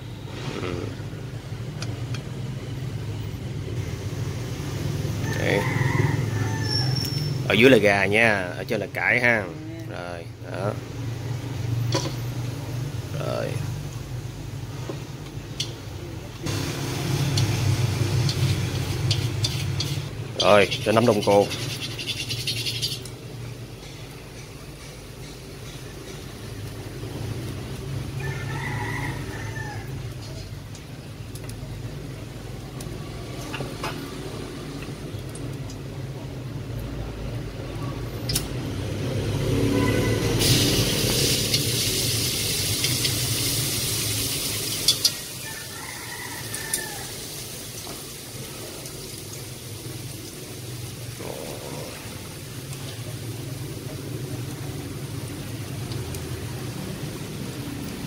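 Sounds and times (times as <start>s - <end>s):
garlic sizzling in hot oil: 16.4s - 36.0s, 40.1s - 58.0s
loud hissing: 16.5s - 21.8s, 40.2s - 45.9s, 50.7s - 52.6s.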